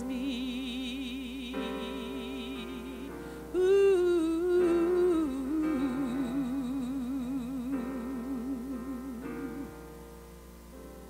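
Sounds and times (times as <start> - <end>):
woman singing gospel solo: 0.0 - 9.8
grand piano accompaniment: 0.0 - 11.0.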